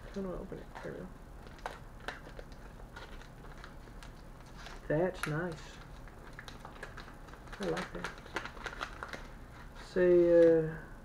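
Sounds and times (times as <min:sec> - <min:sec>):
plastic bag crinkling: 0:00.0 - 0:10.5.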